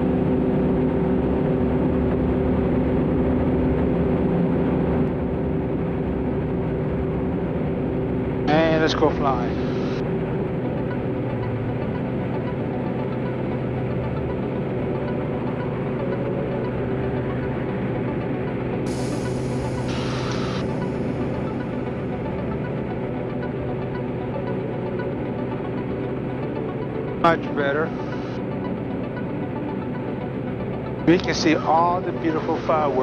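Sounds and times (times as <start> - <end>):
propeller aircraft engine drone: 0.0 - 33.0
burst of static: 19.9 - 20.7.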